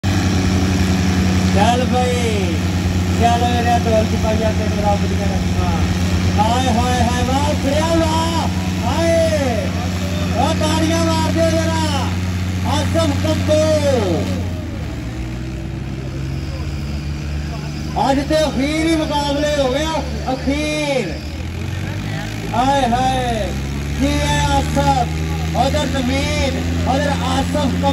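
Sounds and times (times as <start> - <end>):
diesel tractor engines running: 0.0 - 27.9
man's voice: 1.5 - 14.5, 17.9 - 21.2, 21.8 - 27.9
man calling out: 1.6 - 14.4.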